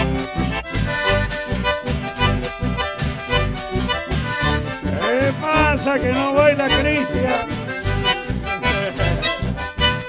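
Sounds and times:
accordions playing melody: 0.0 - 10.0
electric bass: 0.0 - 10.0
strummed acoustic guitars: 0.0 - 10.0
steady beat: 0.7 - 10.0.

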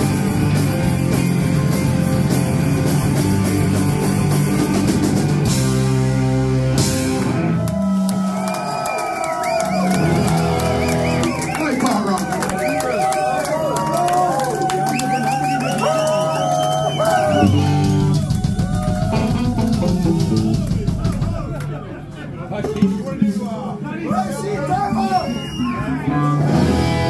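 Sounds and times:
live rock band playing loud: 0.0 - 8.2, 9.6 - 11.6, 17.2 - 23.3, 25.2 - 27.0
crowd cheering and shouting: 0.0 - 27.0
guitar picked: 17.3 - 23.4.

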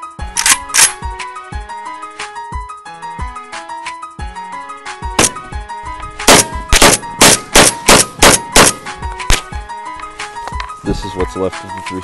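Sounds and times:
background music beat: 0.0 - 12.0
rifle shots: 5.2 - 5.5, 6.2 - 9.5.

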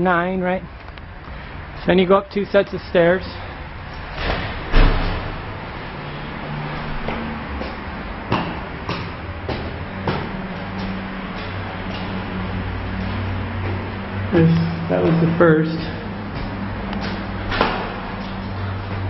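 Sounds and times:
heavy thump: 4.2 - 5.3
footsteps on stone stairs: 7.0 - 12.2.

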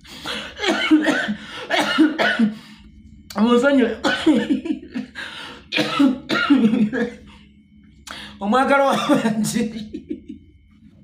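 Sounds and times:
man coughing: 0.2 - 2.6, 4.0 - 7.3, 8.9 - 9.5.

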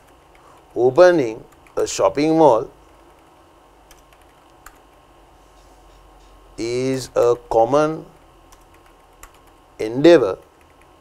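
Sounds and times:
keyboard typing: 1.5 - 1.9, 2.8 - 5.0, 8.1 - 9.6, 10.2 - 11.0.

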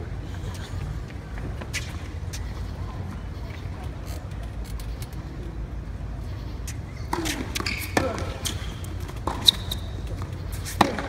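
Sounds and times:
outdoor stadium rumble: 0.0 - 11.0.

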